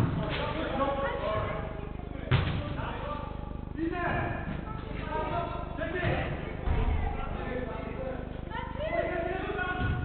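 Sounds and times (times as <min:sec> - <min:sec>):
football being kicked: 0:02.3 - 0:02.6.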